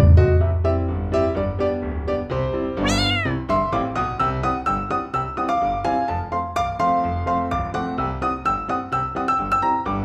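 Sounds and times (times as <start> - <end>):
light piano music: 0.0 - 10.0
cat meow: 2.8 - 3.6.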